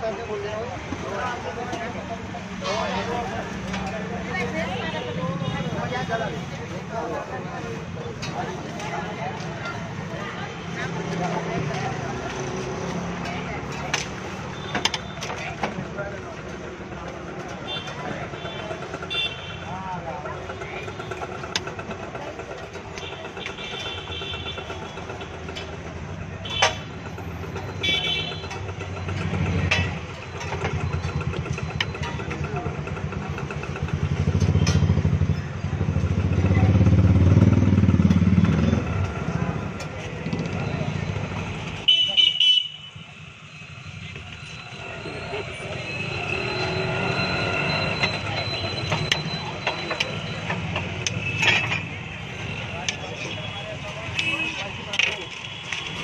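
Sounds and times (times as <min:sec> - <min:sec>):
motorcycle engines passing: 0:00.1 - 0:42.1, 0:42.9 - 0:56.0.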